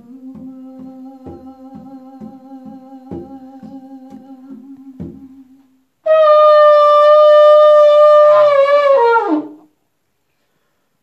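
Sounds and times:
shofar blast: 6.0s - 9.6s.

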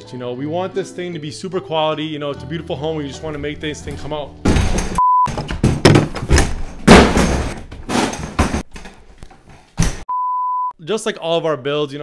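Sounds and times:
wooden door banging: 3.9s - 9.2s, 9.8s - 10.1s.

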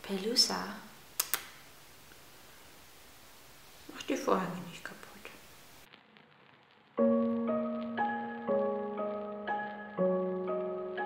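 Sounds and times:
woman speaking softly: 0.0s - 0.9s, 3.9s - 5.4s.

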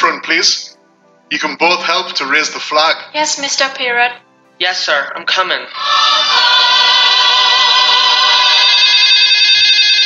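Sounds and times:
mobile phone ringtone: 7.6s - 10.0s.

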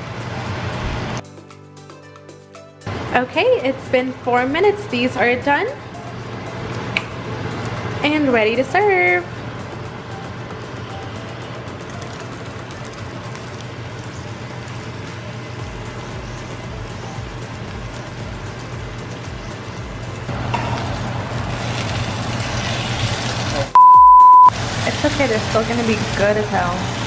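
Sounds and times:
soft background music: 0.2s - 21.1s
food sizzling in a skillet: 20.3s - 23.7s, 24.5s - 27.0s
high censor beep: 23.8s - 24.5s.

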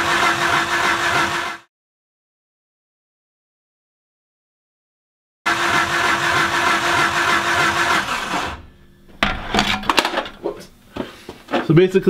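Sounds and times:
engine cranking on starter: 0.0s - 1.7s, 5.5s - 8.7s
clicks and knocks: 9.1s - 10.7s.

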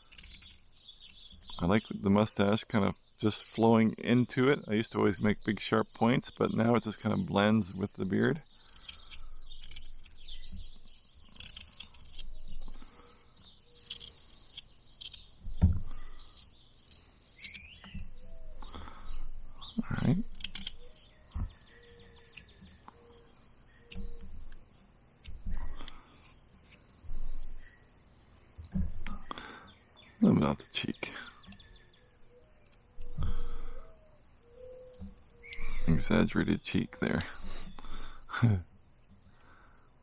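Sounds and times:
knife carving wood: 0.0s - 2.2s, 6.5s - 23.2s, 23.8s - 27.7s, 28.5s - 29.4s
small birds chirping: 0.0s - 40.0s.

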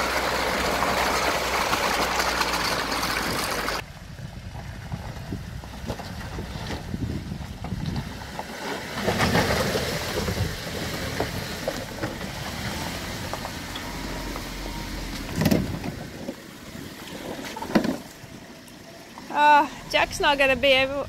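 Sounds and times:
tyres grinding over stones: 0.0s - 3.8s, 4.9s - 21.0s
car engine running at low revs: 0.0s - 21.0s.

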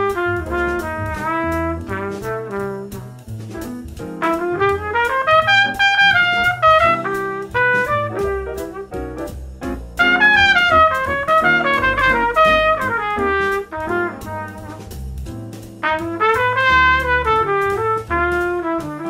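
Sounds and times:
backing track with bass line: 0.0s - 19.0s
trumpet jazz solo: 0.0s - 19.0s.

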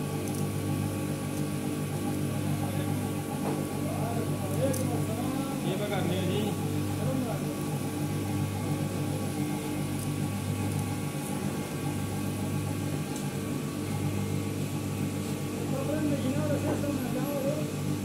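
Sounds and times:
machinery humming: 0.0s - 18.0s.

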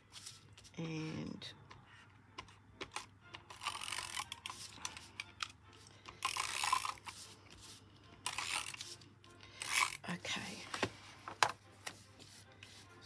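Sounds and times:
paper rubbing against card: 11.8s - 13.0s.

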